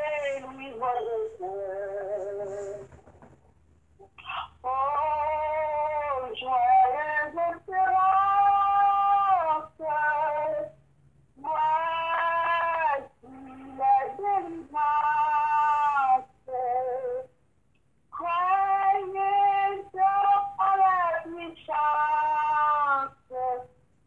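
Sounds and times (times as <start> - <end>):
high voice singing slowly: 0.0 - 2.8, 4.0 - 10.8, 11.4 - 17.3, 18.1 - 23.8.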